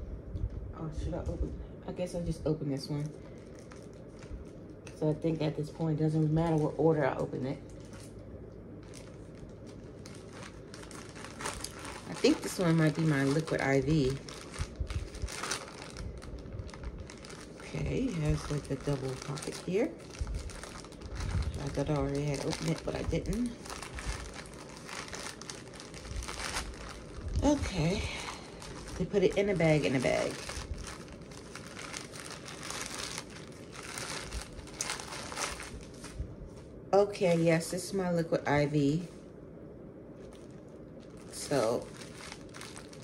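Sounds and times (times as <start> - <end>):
plastic bag crinkling: 3.0 - 5.2, 6.1 - 37.7, 40.2 - 43.0.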